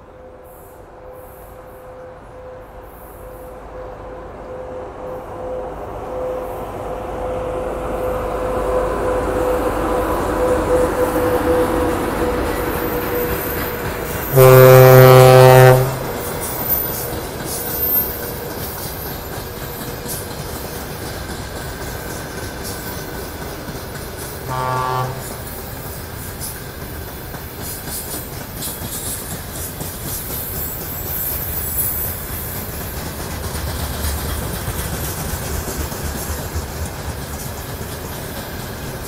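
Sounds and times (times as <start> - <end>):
loud train horn blast: 0.1 - 13.5, 14.2 - 16.3, 24.4 - 25.5
electric locomotive running: 3.1 - 39.0.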